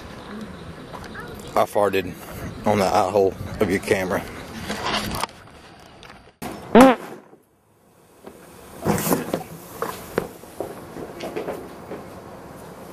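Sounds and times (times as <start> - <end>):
loud fart: 6.7 - 7.2.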